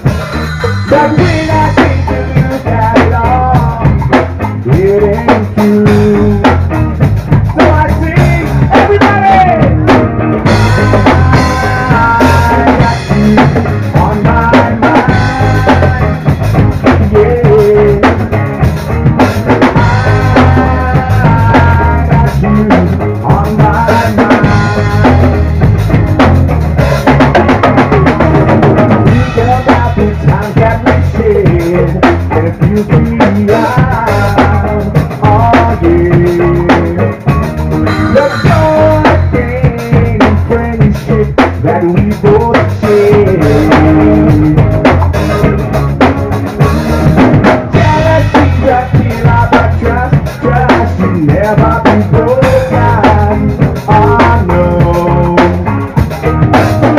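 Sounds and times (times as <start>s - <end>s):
melodic lead line: 0.0s - 41.0s, 42.3s - 56.9s
drum kit beat: 0.0s - 56.9s
rock band playing: 0.0s - 56.9s.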